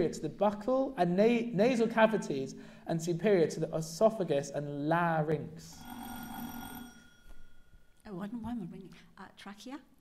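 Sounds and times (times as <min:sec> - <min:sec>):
quiz buzzer ringing: 0:05.7 - 0:08.0.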